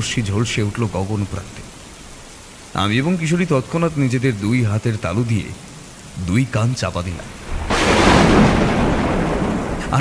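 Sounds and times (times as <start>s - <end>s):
thunder crack and rumble: 7.4s - 10.0s.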